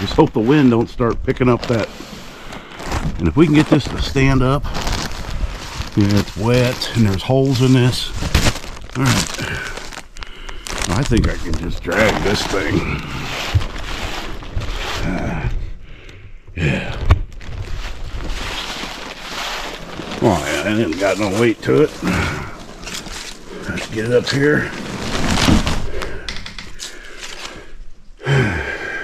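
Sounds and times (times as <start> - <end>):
plastic packaging rustling: 0.0 - 15.8, 16.6 - 27.9.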